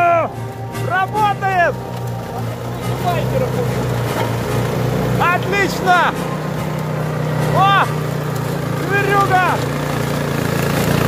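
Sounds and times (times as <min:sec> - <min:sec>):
snow blower engine droning: 0:00.0 - 0:11.0.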